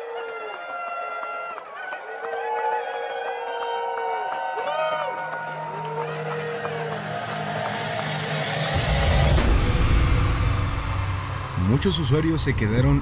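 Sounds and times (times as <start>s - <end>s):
live concert noise: 4.7s - 13.0s
deep rumble: 5.8s - 13.0s.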